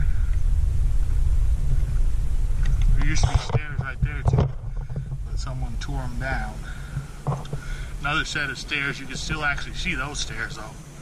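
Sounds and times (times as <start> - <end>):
wind buffeting microphone: 0.0 - 11.0
man's voice: 3.0 - 4.5, 5.3 - 6.7, 8.0 - 10.8.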